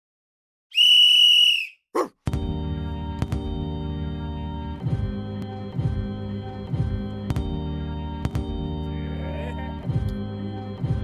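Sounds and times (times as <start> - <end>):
high whistle note: 0.7 - 1.8.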